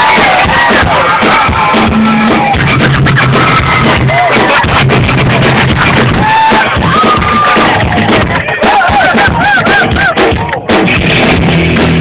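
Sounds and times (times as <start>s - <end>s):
drums: 0.0s - 12.0s
electric guitar riff: 0.0s - 12.0s.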